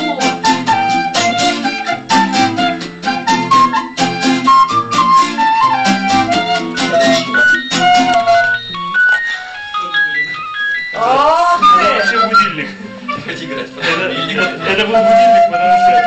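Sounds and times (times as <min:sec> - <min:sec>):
recorders playing folk tune: 0:00.0 - 0:16.0
rhythmic acoustic guitar: 0:00.0 - 0:16.0.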